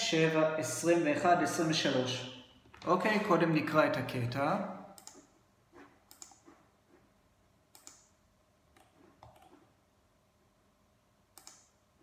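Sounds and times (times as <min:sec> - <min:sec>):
faint sharp clicks: 0:11.4 - 0:11.7.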